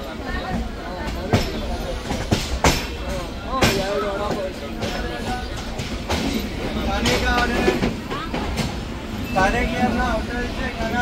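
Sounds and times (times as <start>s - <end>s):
train wheels rumbling on track: 0.0s - 11.0s
wheels clacking over rail joints: 0.0s - 11.0s.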